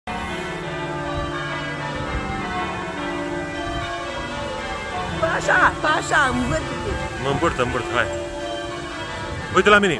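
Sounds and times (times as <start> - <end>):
church bells ringing: 0.1 - 9.9.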